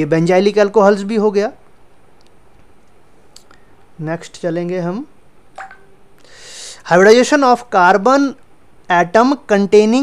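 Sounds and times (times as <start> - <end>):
man lecturing: 0.0 - 1.6, 4.0 - 5.1, 6.7 - 10.0
soft breath hiss: 0.0 - 10.0.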